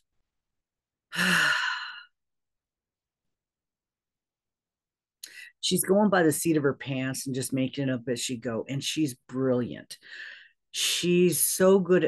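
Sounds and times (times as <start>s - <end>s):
woman sighing: 1.1s - 2.2s.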